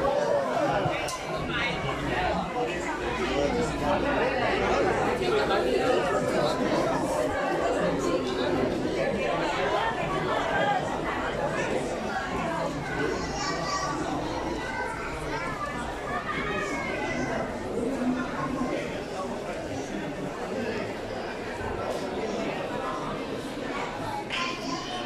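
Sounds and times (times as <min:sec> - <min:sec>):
crowd chatter: 0:00.0 - 0:25.0.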